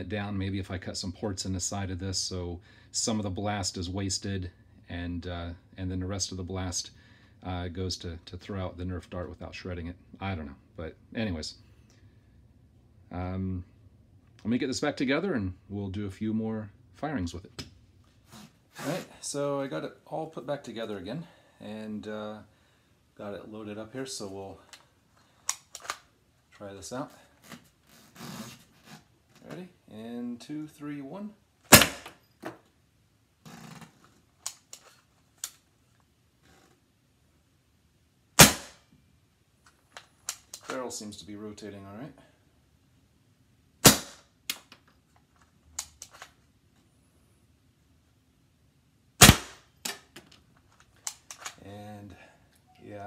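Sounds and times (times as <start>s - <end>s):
toy gun shots: 31.7s - 32.2s, 38.4s - 38.8s, 43.8s - 44.2s, 49.2s - 50.0s.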